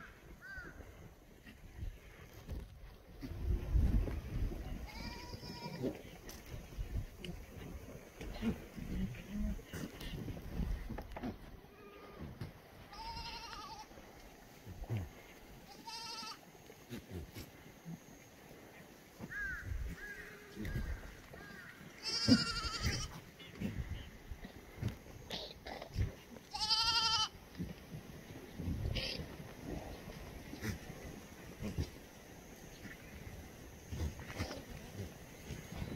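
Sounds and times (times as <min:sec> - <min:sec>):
goats bleating: 0:04.8 - 0:06.0, 0:12.9 - 0:14.0, 0:15.6 - 0:16.4, 0:20.2 - 0:23.6, 0:26.5 - 0:27.4.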